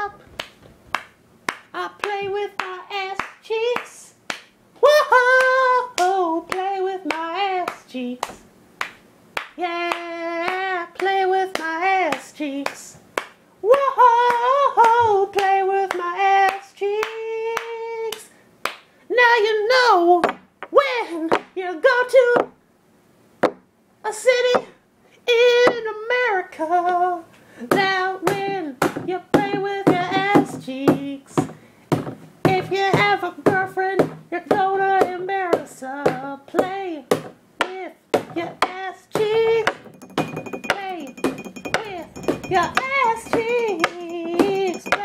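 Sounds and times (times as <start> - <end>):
hand claps: 0.4 - 4.6, 5.4 - 13.4, 14.3 - 18.9, 39.7 - 45.0.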